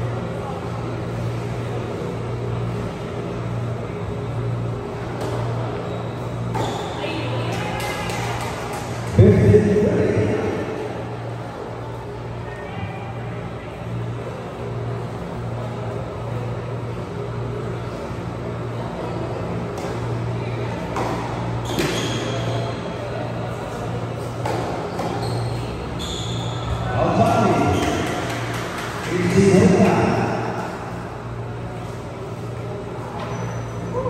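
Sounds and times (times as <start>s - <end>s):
steady low hum: 0.0s - 34.0s
tennis ball bouncing on court: 20.9s - 22.2s, 24.4s - 25.2s.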